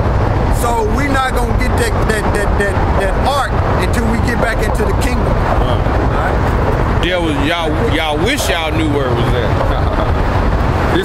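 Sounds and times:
street background rumble: 0:00.0 - 0:11.0
men talking: 0:00.5 - 0:11.0.

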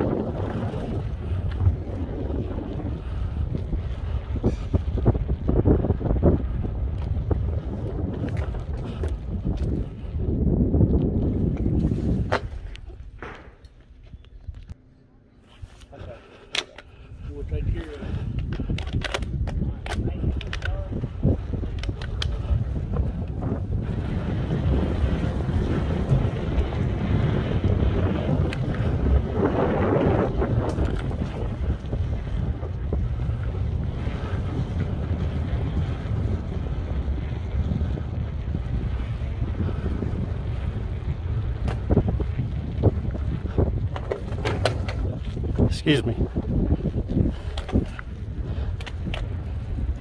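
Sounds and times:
wind buffeting microphone: 0:00.0 - 0:14.8, 0:15.5 - 0:50.0.

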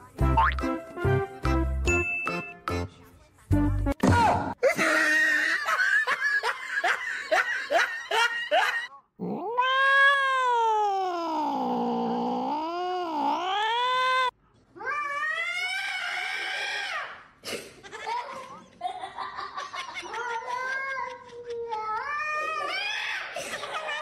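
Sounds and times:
cats yowling: 0:09.2 - 0:16.5.

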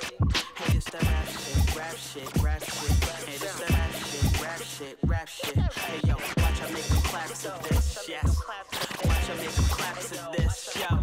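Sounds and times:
rapping over a beat: 0:00.0 - 0:11.0.

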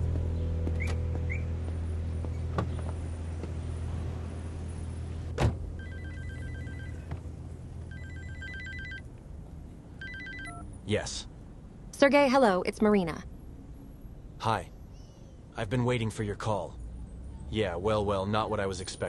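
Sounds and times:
car door thump: 0:05.4 - 0:05.7
electronic phone ringtone: 0:05.8 - 0:07.1, 0:07.9 - 0:09.0, 0:10.0 - 0:10.7.

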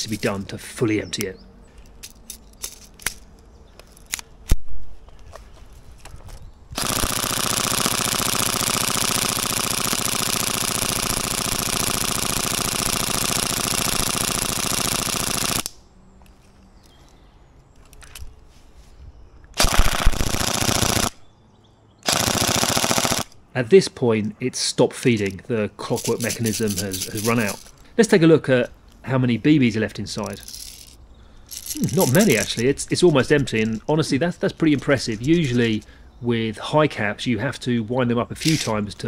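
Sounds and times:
gun handling clicks: 0:01.1 - 0:05.4, 0:15.4 - 0:17.2, 0:17.8 - 0:18.4, 0:26.0 - 0:27.9, 0:30.2 - 0:33.9, 0:38.4 - 0:38.8
airsoft gun automatic fire: 0:06.8 - 0:15.7, 0:19.6 - 0:21.2, 0:22.0 - 0:23.4.

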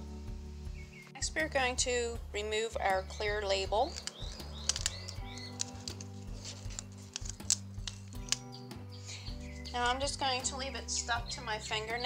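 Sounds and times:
background music: 0:00.0 - 0:12.0
label peeling clicks and crackles: 0:03.8 - 0:08.6.

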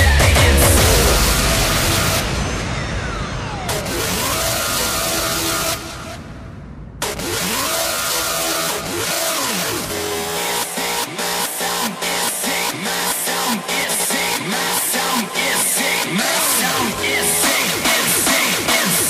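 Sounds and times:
heavy electronic kick drum: 0:00.0 - 0:06.2, 0:07.0 - 0:19.0
gliding rev-like synth sounds: 0:00.3 - 0:19.0.

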